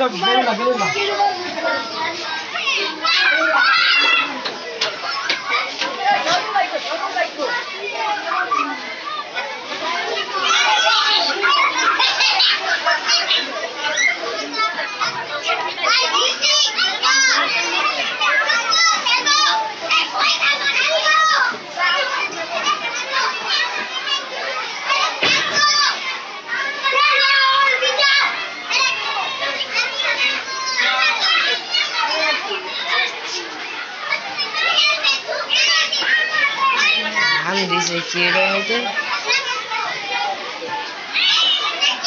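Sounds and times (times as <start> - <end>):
children playing and shouting: 0.0 - 42.0
child shouting: 2.6 - 4.4, 34.4 - 39.8.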